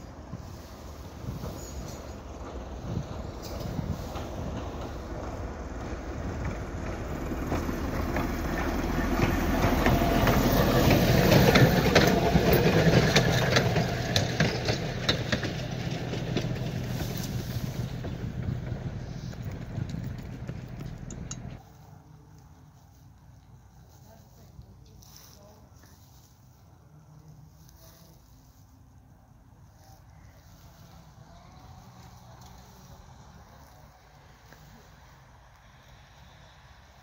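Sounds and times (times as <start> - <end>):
wheels clicking over rail joints: 0.0 - 21.7
rail motor car engine: 0.0 - 37.0.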